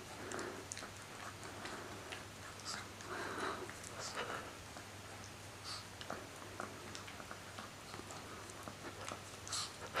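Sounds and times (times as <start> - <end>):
dog chewing a treat: 0.0 - 10.0.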